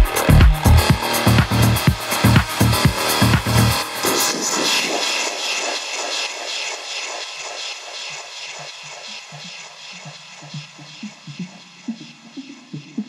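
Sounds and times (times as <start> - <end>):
soft pulsing rhythm: 0.0 - 3.8, 5.6 - 13.0
airy synth wash: 0.0 - 13.0.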